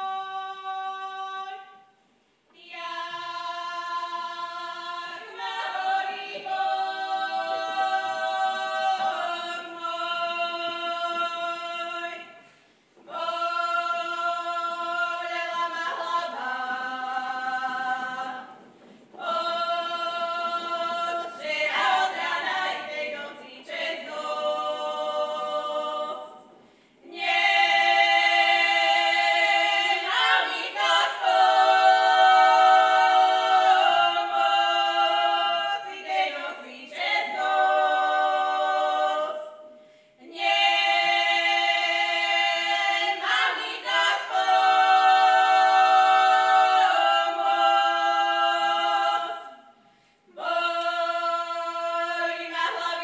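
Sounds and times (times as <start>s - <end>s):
women singing unaccompanied: 0.0s - 12.4s, 13.0s - 18.6s, 19.2s - 53.0s.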